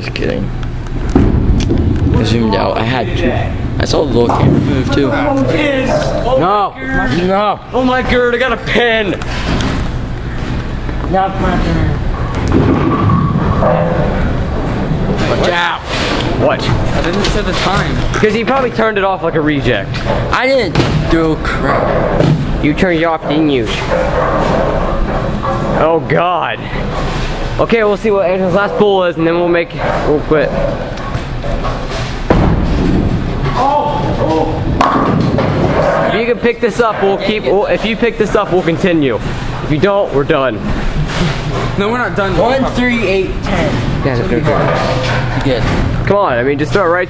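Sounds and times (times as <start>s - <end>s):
bowling alley rumble and clatter: 0.0s - 47.0s
bowling ball rolling: 1.0s - 5.5s, 12.0s - 17.4s, 21.7s - 26.2s, 29.8s - 37.5s
bowling ball thud: 1.1s - 2.2s, 12.3s - 15.2s, 32.2s - 33.6s, 34.5s - 36.1s.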